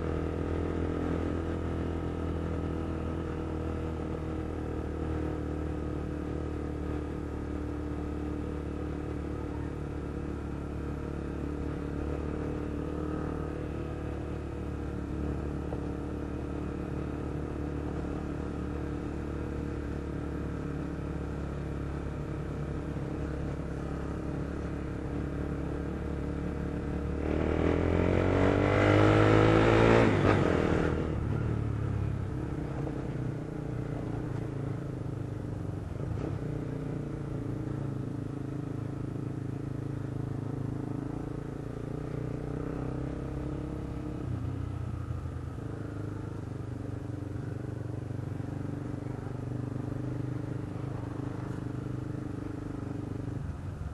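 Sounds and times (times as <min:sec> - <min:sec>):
motorcycle engine running: 0:00.0 - 0:53.9.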